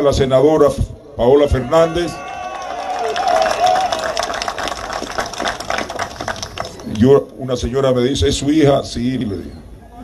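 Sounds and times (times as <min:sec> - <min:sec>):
crowd applauding: 0:02.1 - 0:07.0.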